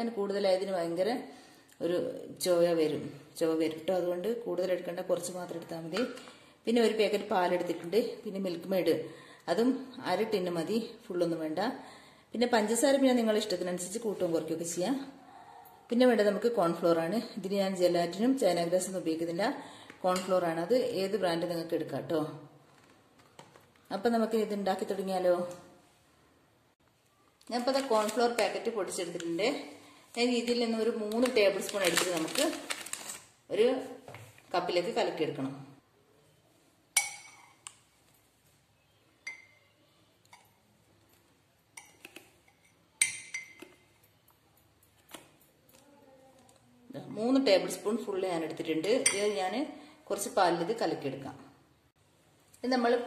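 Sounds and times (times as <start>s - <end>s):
woman talking: 0.0s - 11.8s, 27.4s - 32.7s, 33.5s - 35.8s, 46.9s - 51.5s, 52.6s - 53.0s
metal spoon clinking on mug: 37.0s - 37.6s, 39.2s - 39.7s, 41.7s - 43.8s, 49.0s - 49.4s.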